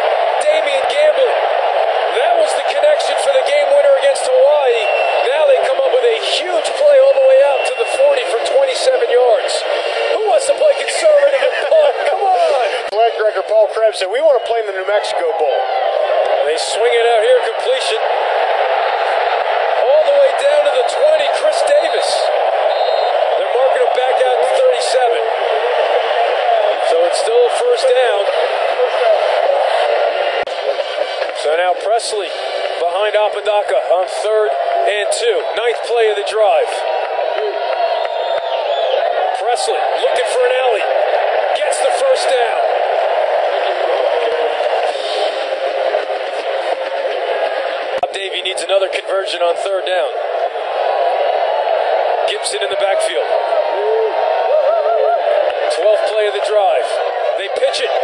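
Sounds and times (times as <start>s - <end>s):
stadium crowd noise: 0.0s - 58.0s.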